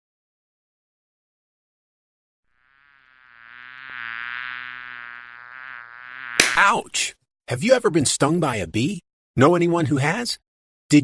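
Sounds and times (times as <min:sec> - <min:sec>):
bee buzzing: 0:02.5 - 0:06.8.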